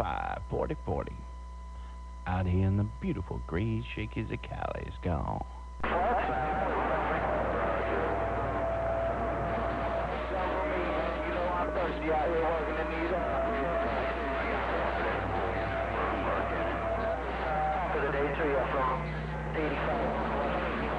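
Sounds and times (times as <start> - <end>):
constant low hum: 0.0 - 20.9
steady radio whistle: 0.0 - 20.9
garbled radio voices: 2.3 - 20.9.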